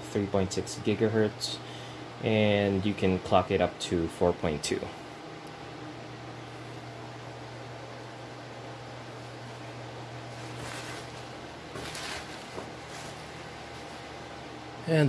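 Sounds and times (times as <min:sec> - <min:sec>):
steady low hum: 0:00.0 - 0:15.0
bubble wrap rustling: 0:10.3 - 0:14.1.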